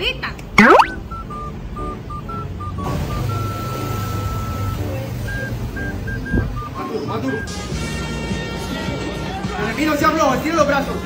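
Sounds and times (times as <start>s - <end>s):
high electronic notes tune: 0.6s - 1.0s.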